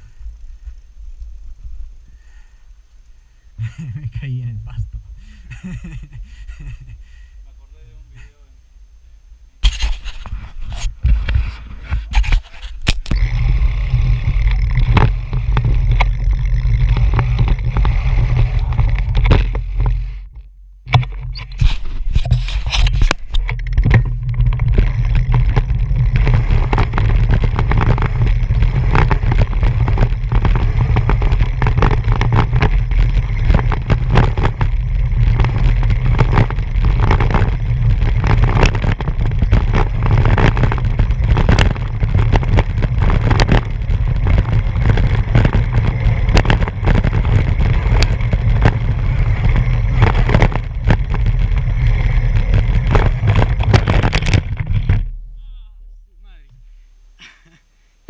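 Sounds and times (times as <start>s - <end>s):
bicycle tyres on dirt: 0.0s - 4.5s, 9.0s - 58.0s
wind rumbling on microphone: 9.1s - 56.7s
bicycle rattles and knocks: 9.6s - 55.3s.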